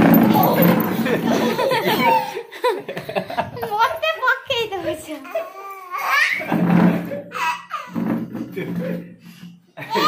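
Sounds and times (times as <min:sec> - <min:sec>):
baby laughing and squealing: 0:00.1 - 0:02.4, 0:05.5 - 0:06.6, 0:07.3 - 0:08.0
adult laughing: 0:09.8 - 0:10.0.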